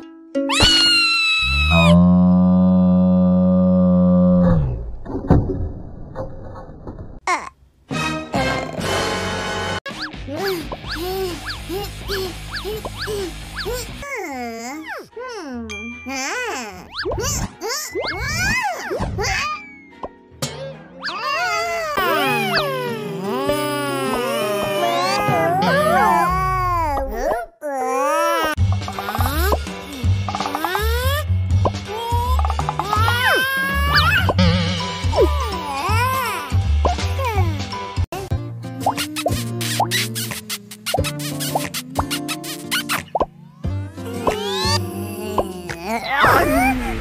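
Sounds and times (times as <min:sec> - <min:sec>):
cartoon high squeal: 0:00.5 - 0:02.0, 0:32.9 - 0:34.7
squeaky cartoon character vocalisations: 0:00.5 - 0:02.0, 0:09.9 - 0:19.7, 0:21.0 - 0:31.2, 0:31.9 - 0:37.5, 0:38.9 - 0:43.2, 0:44.0 - 0:46.9
background music: 0:07.9 - 0:26.9, 0:28.6 - 0:47.0.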